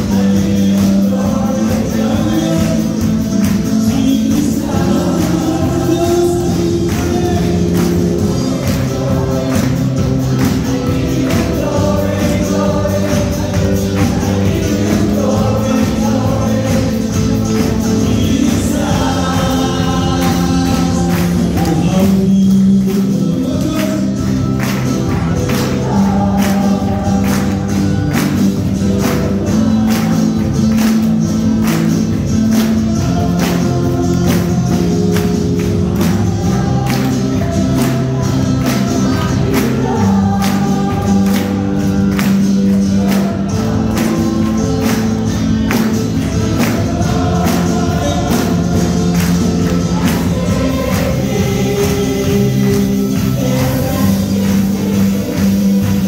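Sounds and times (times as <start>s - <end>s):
amplified backing music: 0.0s - 56.0s
voices singing gospel song: 0.0s - 56.0s
steady beat: 0.9s - 56.0s.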